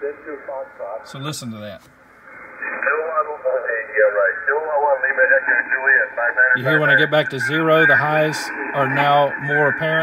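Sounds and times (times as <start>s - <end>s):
man's voice over shortwave radio: 0.0s - 1.1s, 2.6s - 10.0s.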